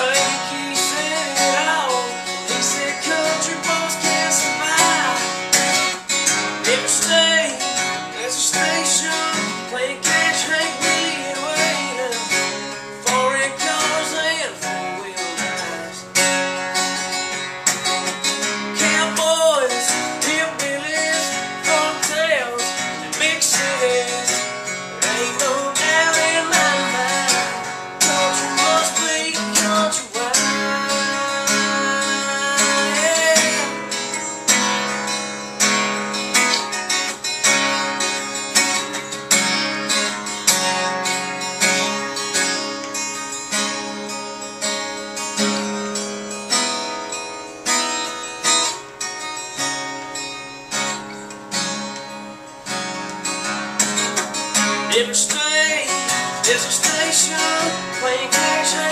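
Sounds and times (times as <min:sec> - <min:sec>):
man singing: 0:00.0 - 0:16.5, 0:18.2 - 0:35.1, 0:54.6 - 0:58.9
acoustic guitar strumming: 0:00.0 - 0:58.9.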